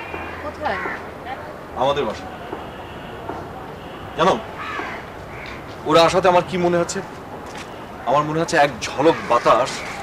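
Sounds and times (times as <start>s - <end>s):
crow cawing: 0.0s - 1.1s, 4.2s - 5.7s, 8.9s - 10.0s.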